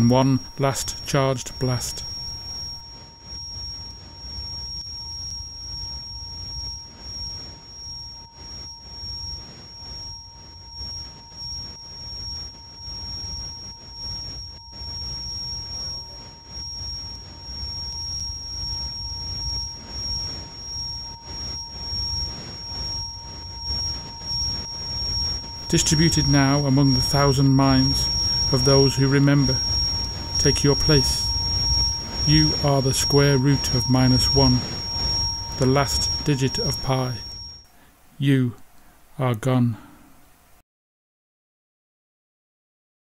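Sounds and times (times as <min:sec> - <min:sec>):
steady whining tones: 0:00.0 - 0:39.1
low wavering rumble: 0:17.2 - 0:37.6.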